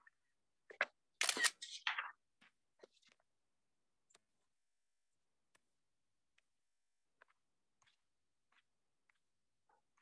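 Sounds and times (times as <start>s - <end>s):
camera shutter sound: 1.2s - 1.7s.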